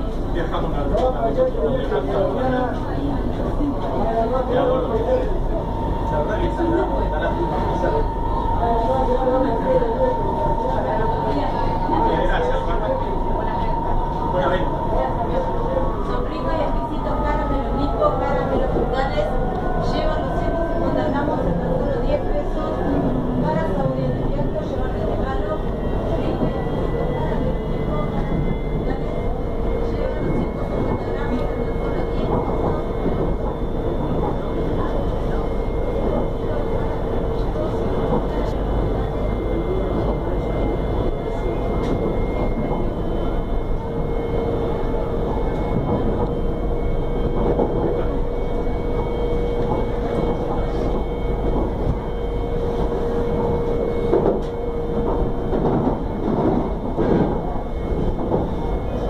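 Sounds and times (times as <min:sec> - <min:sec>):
train wheels rumbling on rail: 0:00.0 - 0:59.0.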